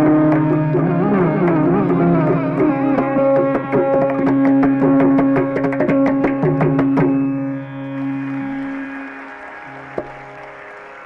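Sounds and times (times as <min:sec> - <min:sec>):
mandolin notes: 0:00.0 - 0:09.4.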